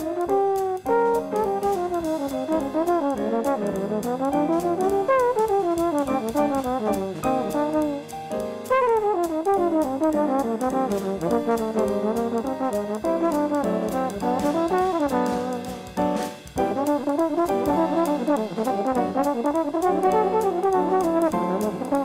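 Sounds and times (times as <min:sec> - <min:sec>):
drum kit cymbals: 0:00.0 - 0:22.0
trombone playing jazz: 0:00.0 - 0:22.0.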